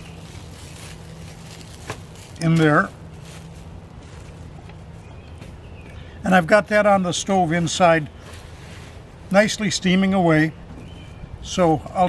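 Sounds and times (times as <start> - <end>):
plastic wrap crinkling: 0.0 - 4.6
steady low hum: 0.0 - 12.0.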